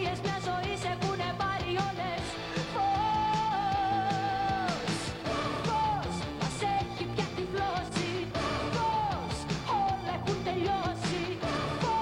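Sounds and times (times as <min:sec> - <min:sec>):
woman singing pop song with band: 0:00.0 - 0:12.0.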